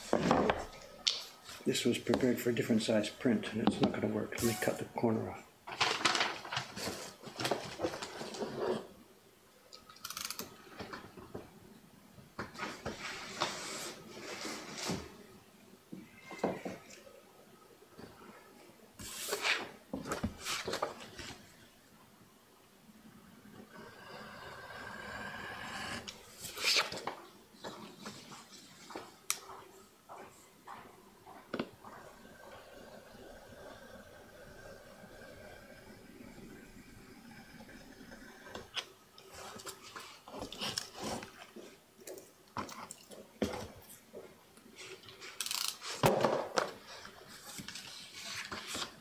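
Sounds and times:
paper sliding on table: 0:19.0 - 0:21.4.

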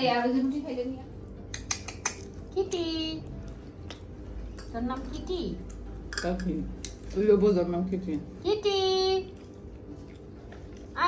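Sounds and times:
cutlery and dishes clinking: 0:06.1 - 0:07.5.

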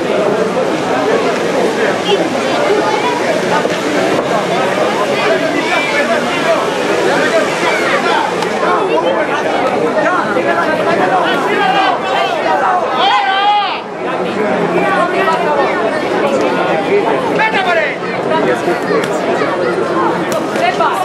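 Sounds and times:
crowd chatter and calls: 0:00.0 - 0:21.0.

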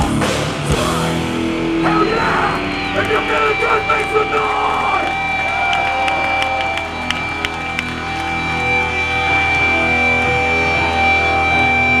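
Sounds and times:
guitar amp feedback tones: 0:00.8 - 0:12.0
person shouting: 0:01.8 - 0:05.1.

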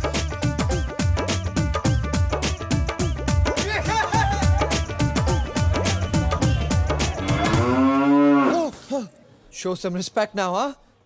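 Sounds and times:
cow mooing: 0:07.2 - 0:08.7.

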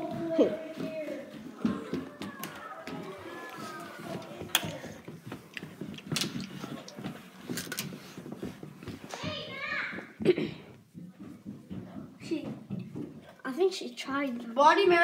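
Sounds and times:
faint children's voices: 0:00.0 - 0:05.4, 0:08.0 - 0:12.8
footsteps: 0:00.0 - 0:14.9.

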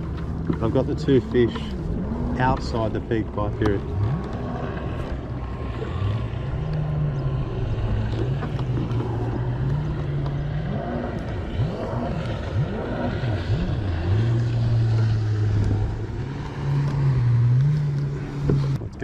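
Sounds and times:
boat engine droning: 0:00.0 - 0:19.0
wind: 0:00.0 - 0:19.0.

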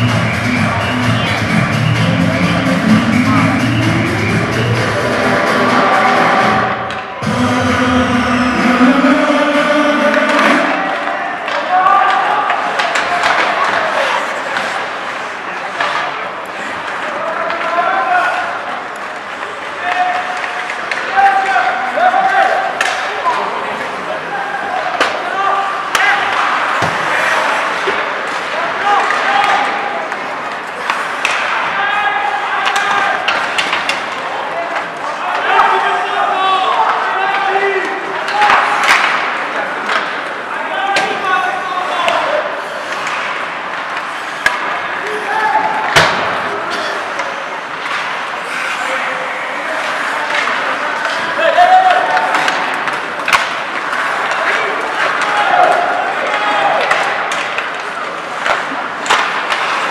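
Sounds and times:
arena music over loudspeakers: 0:00.0 - 0:11.3
players shouting: 0:00.0 - 0:14.9, 0:16.8 - 0:59.9
voices: 0:00.0 - 0:59.9
hockey sticks and puck clacking: 0:10.2 - 0:59.9.

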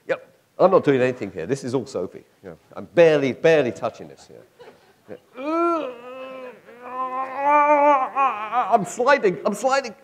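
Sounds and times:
person groaning with strain: 0:05.3 - 0:09.0.

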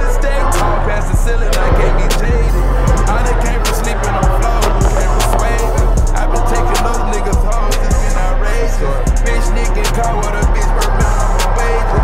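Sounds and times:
booming bass line: 0:00.0 - 0:12.0.

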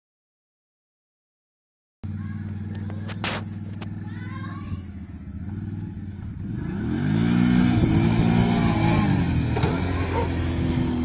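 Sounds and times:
quad bike engine revving: 0:02.1 - 0:11.0.

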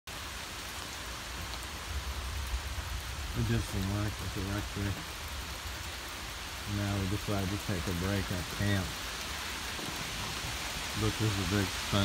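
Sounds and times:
steady rain falling: 0:00.1 - 0:12.0.

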